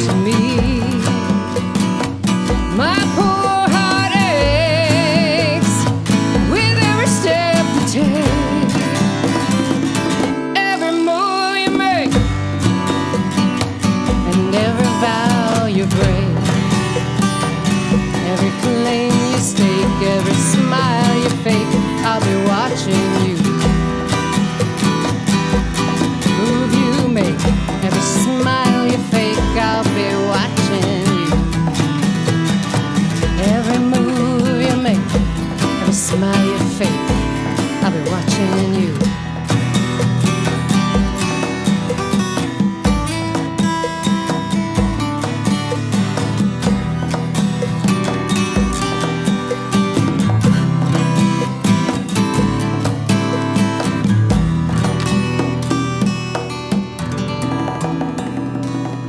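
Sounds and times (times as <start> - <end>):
woman singing: 0.0 - 12.8, 13.9 - 24.4, 25.8 - 39.6
acoustic guitars strumming: 0.0 - 59.0
electronic hand drum beat: 0.0 - 59.0.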